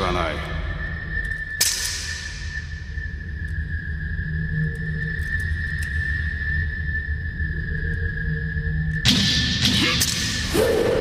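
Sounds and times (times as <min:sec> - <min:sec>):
low continuous drone: 0:00.0 - 0:11.0.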